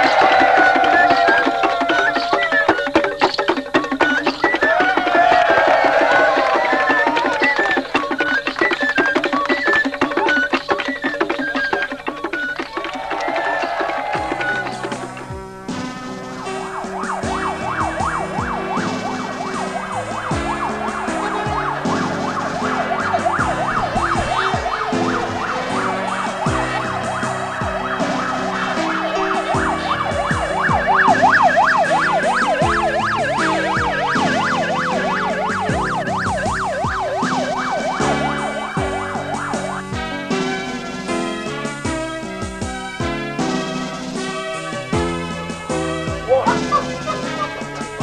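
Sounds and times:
siren yelping: 0:00.0 - 0:15.3, 0:16.4 - 0:40.2, 0:46.2 - 0:48.0
background music with beat: 0:00.0 - 0:48.0.

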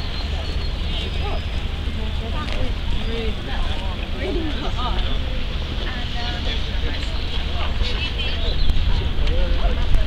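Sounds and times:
faint voices: 0:00.0 - 0:10.0
wind rumble on microphone: 0:00.0 - 0:10.0.

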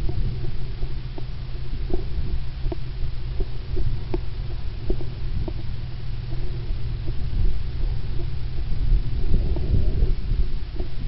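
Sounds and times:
camera jostling rumble: 0:00.0 - 0:11.0.

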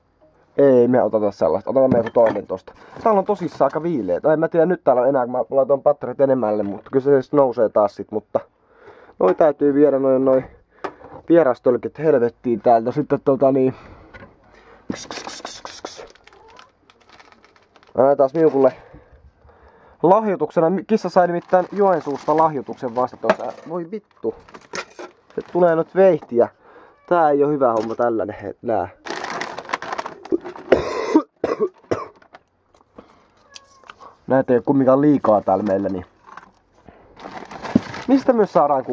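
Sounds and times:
plastic packet crinkling: 0:15.2 - 0:18.7, 0:21.0 - 0:26.3, 0:29.0 - 0:30.8, 0:34.6 - 0:38.9
man coughing: 0:30.7 - 0:32.2.

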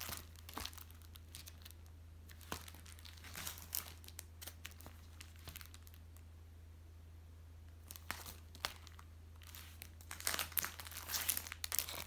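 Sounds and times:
plastic folders crinkling: 0:00.0 - 0:06.0, 0:07.8 - 0:12.0
steady low hum: 0:00.0 - 0:12.0.

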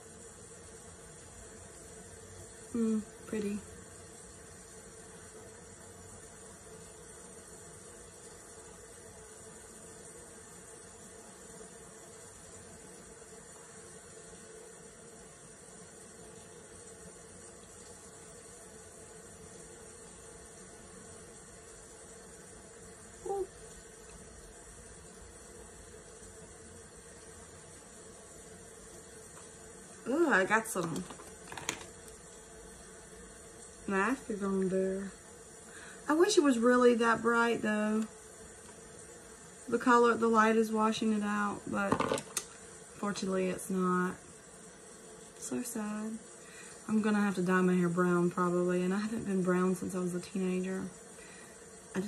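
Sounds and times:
constant hiss: 0:00.0 - 0:52.0
low electrical hum: 0:00.0 - 0:52.0.

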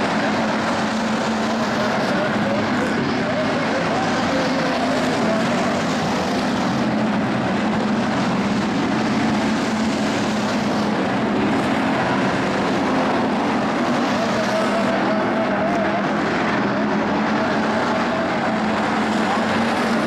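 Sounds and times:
race car engines at speed: 0:00.0 - 0:20.0.

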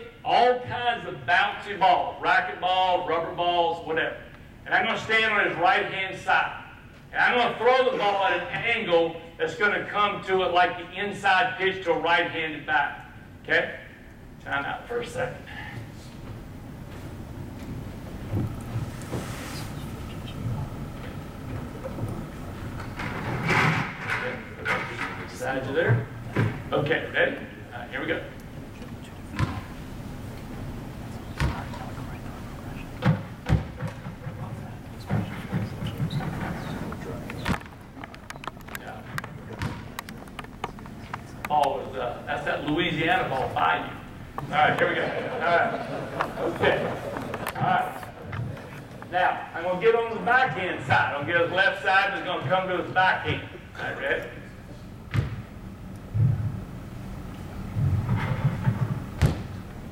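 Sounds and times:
rubber balls thumping on wall: 0:37.4 - 0:40.9, 0:57.8 - 0:59.6.

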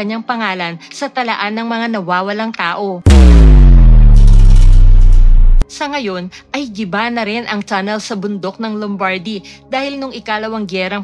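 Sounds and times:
deep cinematic boom: 0:03.1 - 0:05.6
heavy low rumble: 0:03.1 - 0:05.6.

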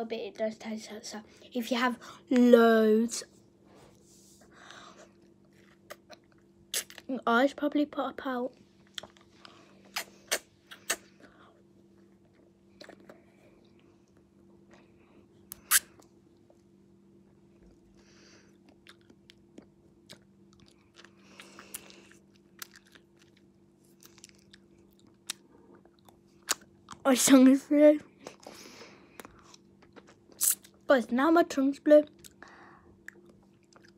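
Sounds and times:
faint steady hum: 0:00.0 - 0:33.9
mouth smacks eating ice lolly: 0:05.6 - 0:07.1, 0:09.9 - 0:11.1, 0:29.2 - 0:30.8.

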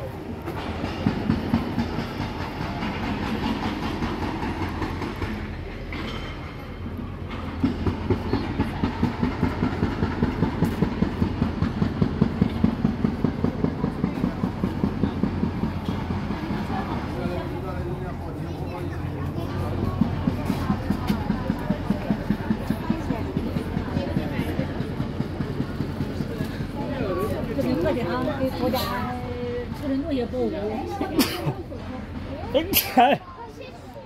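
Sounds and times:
footsteps on pavement: 0:18.8 - 0:30.1.

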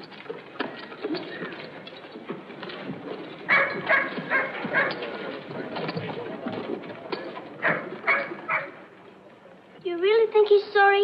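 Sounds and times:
horses hoofbeats on dirt: 0:00.0 - 0:08.8.

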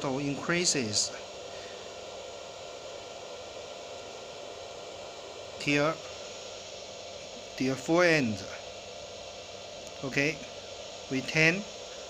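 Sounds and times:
background hiss: 0:00.0 - 0:12.0
faint even hum: 0:00.0 - 0:12.0.

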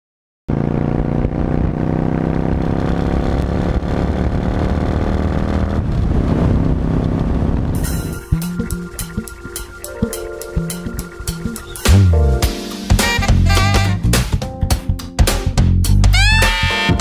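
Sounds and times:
motorcycle engine running: 0:00.5 - 0:14.1
drum beat: 0:07.8 - 0:17.0.

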